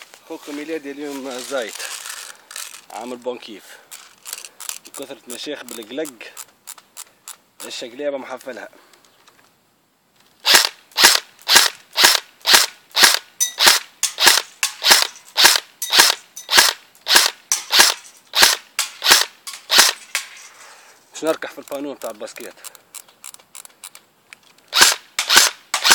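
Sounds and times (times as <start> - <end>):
airsoft rifle shots: 10.4 - 20.3, 24.7 - 25.9.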